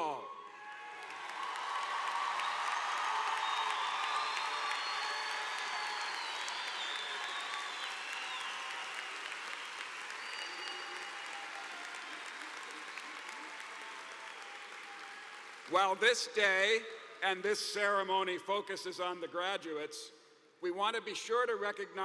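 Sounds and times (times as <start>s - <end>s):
large crowd applauding: 0.0s - 16.8s
whistling over clapping: 0.1s - 15.9s.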